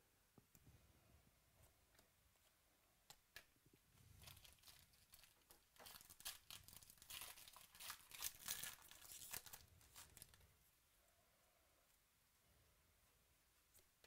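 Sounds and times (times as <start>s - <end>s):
foil wrapper tearing and crinkling: 4.2s - 10.4s.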